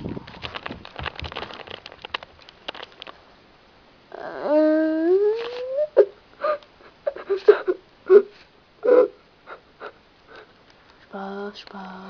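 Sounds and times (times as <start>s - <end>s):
young person whining: 4.1s - 10.5s
giggles: 6.0s - 7.8s.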